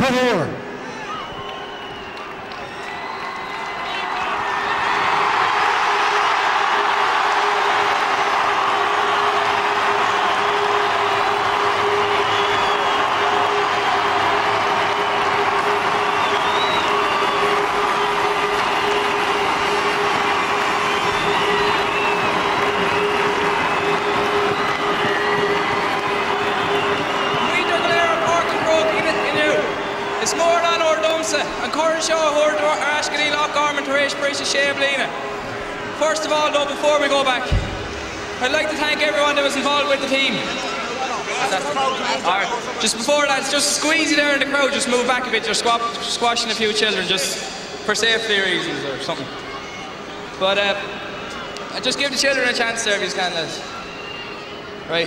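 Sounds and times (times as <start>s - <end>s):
stadium crowd cheering and applauding: 0.0s - 55.0s.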